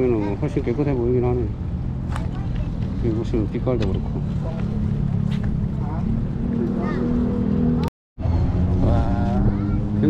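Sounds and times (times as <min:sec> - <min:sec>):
low motor drone: 0:01.5 - 0:10.0.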